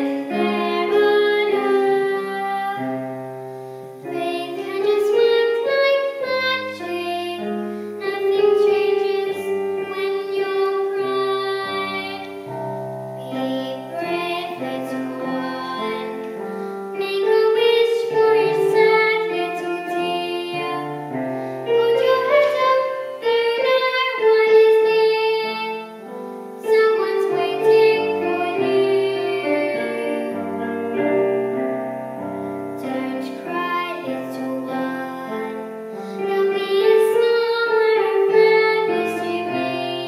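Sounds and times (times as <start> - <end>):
girl singing: 0.0 - 40.0
keyboard accompaniment: 0.0 - 40.0.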